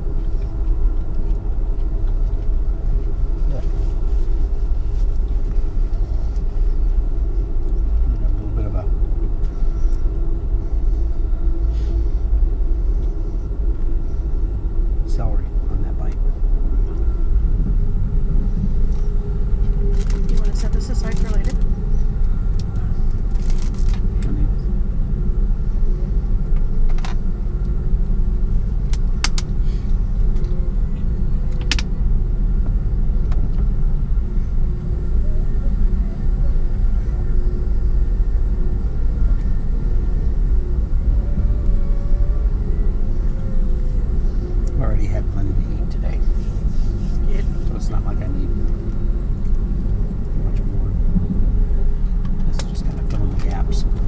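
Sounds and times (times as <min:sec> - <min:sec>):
train car rumbling on rails: 0:00.0 - 0:54.0.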